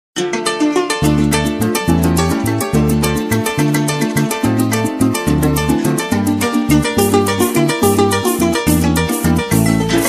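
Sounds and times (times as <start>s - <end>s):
harp plucked quickly: 0.2s - 10.0s
deep bass notes: 1.0s - 10.0s.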